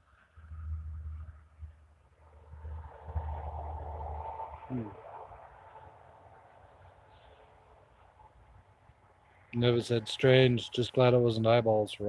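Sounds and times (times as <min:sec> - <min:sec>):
faint outdoor hiss: 0:00.0 - 0:12.0
low rumble: 0:00.3 - 0:07.0.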